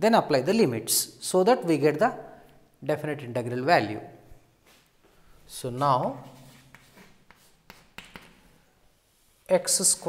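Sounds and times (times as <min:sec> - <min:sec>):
chalk scratching on chalkboard: 0:06.2 - 0:10.0
chalk tapping on chalkboard: 0:06.4 - 0:08.5.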